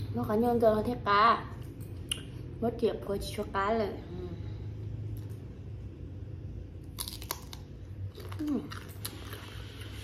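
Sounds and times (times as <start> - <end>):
electric fan humming: 0.0 - 10.0.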